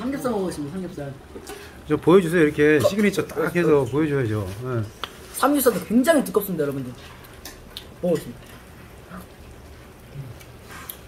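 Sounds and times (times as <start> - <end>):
person chewing: 7.2 - 11.0.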